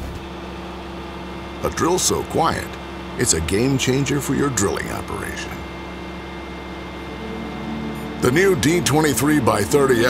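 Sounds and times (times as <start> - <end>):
diesel engine running: 0.0 - 10.0.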